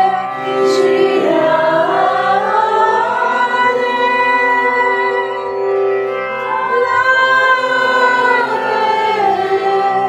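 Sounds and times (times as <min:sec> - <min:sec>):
held-note accompaniment: 0:00.0 - 0:10.0
voices singing devotional song: 0:00.0 - 0:10.0.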